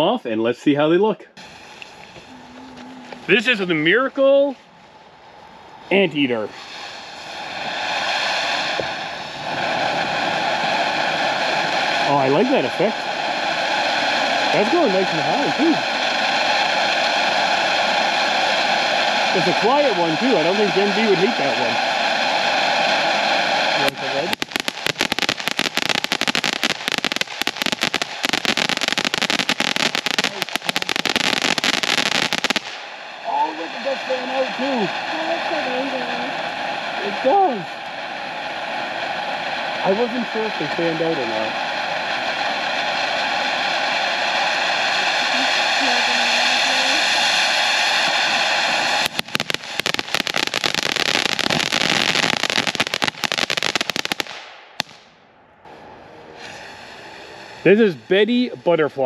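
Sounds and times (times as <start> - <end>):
firework fountain hissing: 1.3 - 55.1, 56.4 - 59.0.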